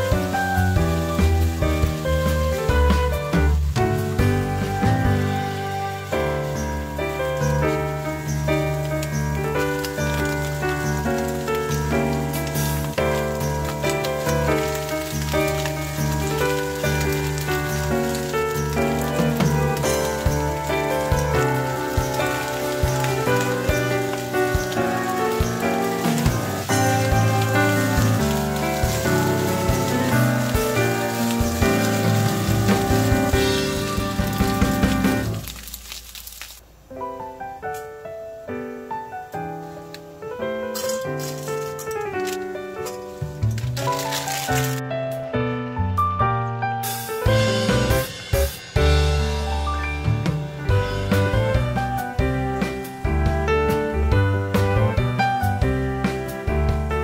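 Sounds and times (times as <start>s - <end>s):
background music: 0.0s - 35.8s, 37.0s - 57.0s
food sizzling in frying pan: 0.0s - 36.6s.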